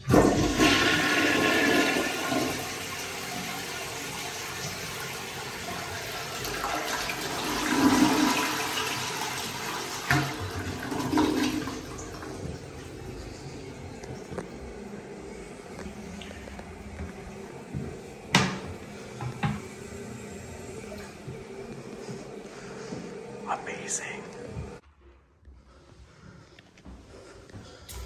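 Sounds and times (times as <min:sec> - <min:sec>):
toilet flushing water rushing: 0:00.0 - 0:14.4.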